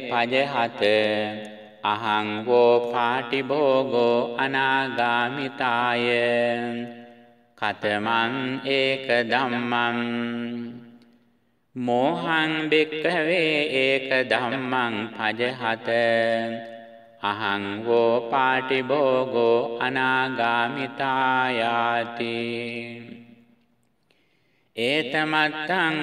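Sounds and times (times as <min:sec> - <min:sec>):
chanted scripture recitation: 0:00.0 - 0:26.0.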